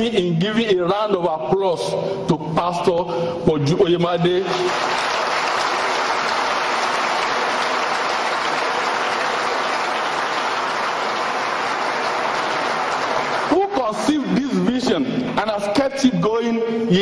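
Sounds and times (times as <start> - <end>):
audience applause: 4.4 - 14.4.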